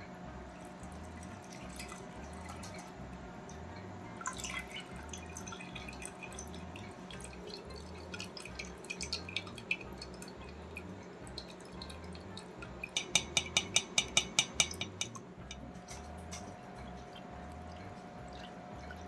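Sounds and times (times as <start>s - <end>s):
drips and small splashes: 0.4s - 19.0s
liquid trickling through strainer: 0.5s - 19.0s.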